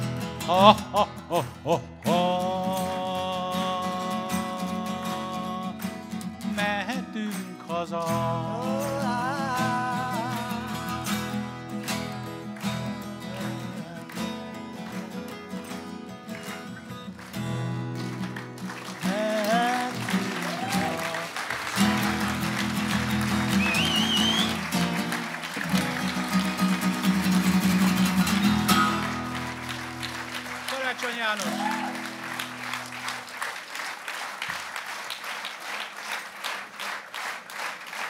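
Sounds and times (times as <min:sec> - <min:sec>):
acoustic guitar strumming: 0:00.0 - 0:33.3
audience applause: 0:10.9 - 0:38.0.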